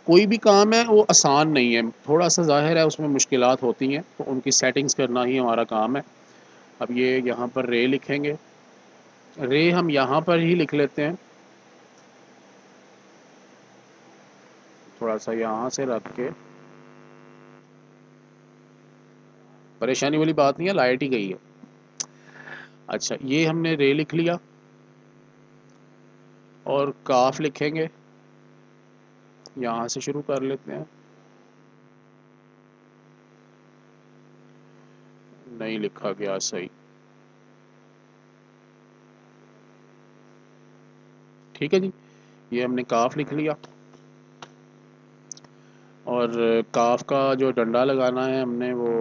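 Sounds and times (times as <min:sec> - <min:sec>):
faint background hiss: 0:00.0 - 0:24.5, 0:41.4 - 0:49.0
electrical mains hum: 0:00.0 - 0:49.0.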